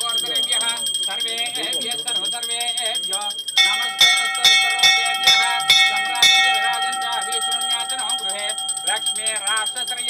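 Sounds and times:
hand bell ringing: 0.0 - 10.0.

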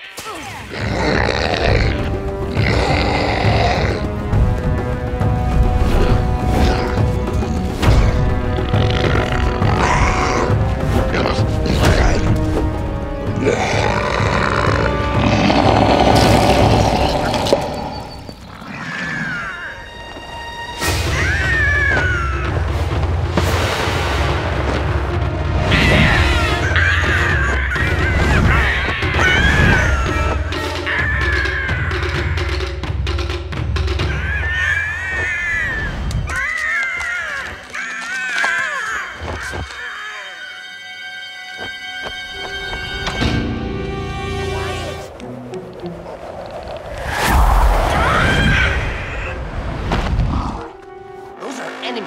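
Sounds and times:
cartoon bear roaring: 13.4 - 17.7.

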